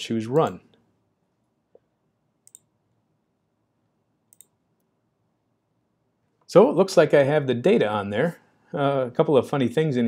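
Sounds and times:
computer mouse clicks: 0:02.4 - 0:02.7, 0:04.3 - 0:04.9.

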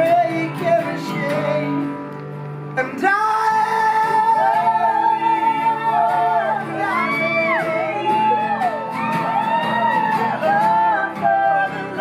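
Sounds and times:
acoustic guitars and mandolin: 0:00.0 - 0:12.0
voices singing in harmony: 0:03.0 - 0:12.0.

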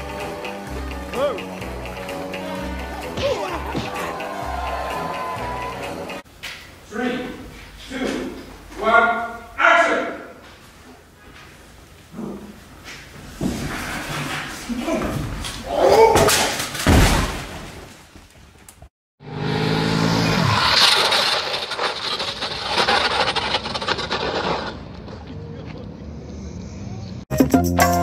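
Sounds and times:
motorcycle scraping across asphalt: 0:20.1 - 0:26.4.

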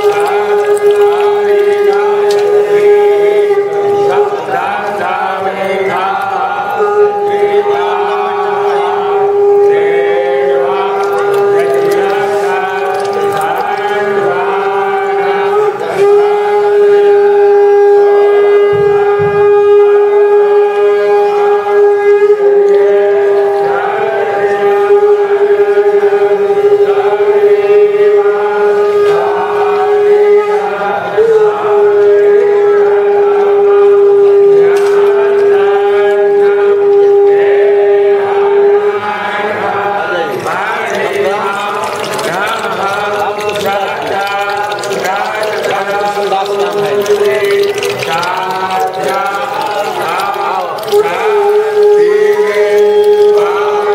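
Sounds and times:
conch shell blown: 0:00.0 - 0:05.0, 0:05.9 - 0:23.7, 0:45.5 - 0:53.9
voices chanting: 0:00.0 - 0:16.6.

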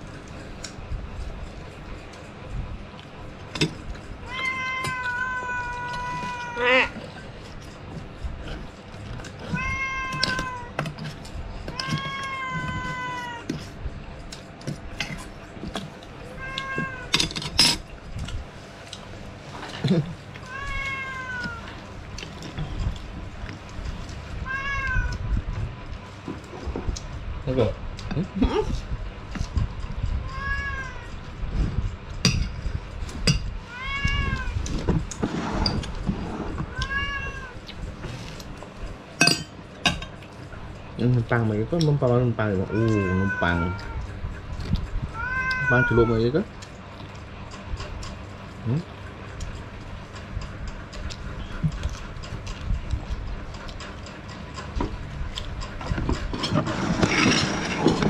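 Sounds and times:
cat meowing: 0:04.2 - 0:07.0, 0:09.4 - 0:10.9, 0:11.7 - 0:13.6, 0:16.3 - 0:17.1, 0:20.4 - 0:21.8, 0:24.4 - 0:25.4, 0:30.2 - 0:31.2, 0:33.6 - 0:34.7, 0:36.6 - 0:37.8, 0:42.6 - 0:44.2, 0:45.1 - 0:46.2.

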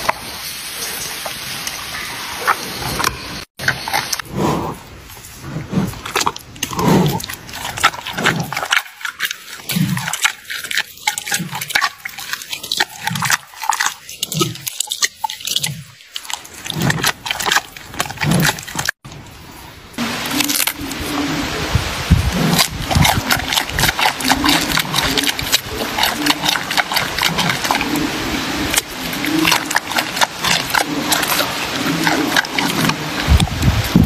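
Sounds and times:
panda chewing and crunching: 0:05.3 - 0:19.0, 0:22.3 - 0:33.8.

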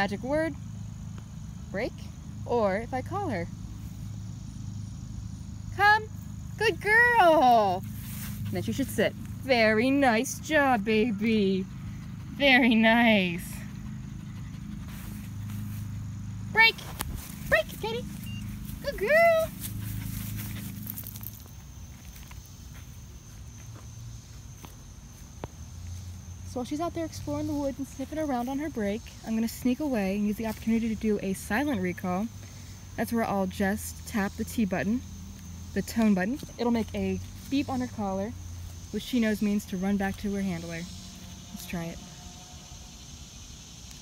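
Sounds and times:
high insect drone: 0:00.0 - 0:44.0
footsteps on grass and mulch: 0:06.9 - 0:09.7, 0:14.2 - 0:26.4, 0:35.3 - 0:42.0.

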